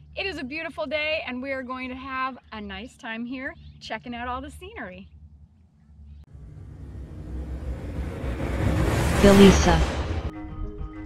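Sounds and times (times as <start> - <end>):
whoosh sound effect: 6.3 - 10.3.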